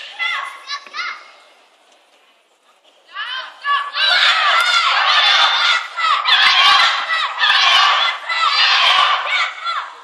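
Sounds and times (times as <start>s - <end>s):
young voices shouting in a hall: 0.0s - 1.4s, 3.1s - 10.0s.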